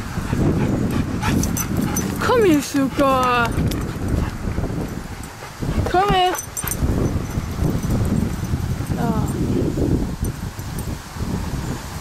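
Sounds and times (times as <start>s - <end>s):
person calling a dog: 8.9s - 9.7s.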